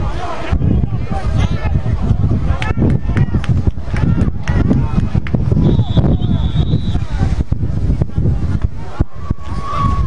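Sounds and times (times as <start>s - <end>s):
spectators talking and calling out: 0.0s - 10.0s
referee's whistle blast: 5.6s - 7.1s.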